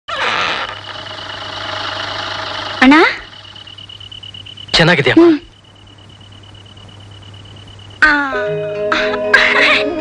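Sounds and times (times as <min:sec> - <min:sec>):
sewing machine running: 0:00.6 - 0:04.0.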